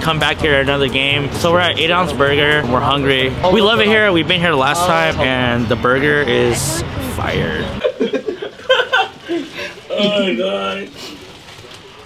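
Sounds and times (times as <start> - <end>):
people speaking: 0.0 - 8.2, 9.9 - 11.0
people laughing: 7.8 - 10.8.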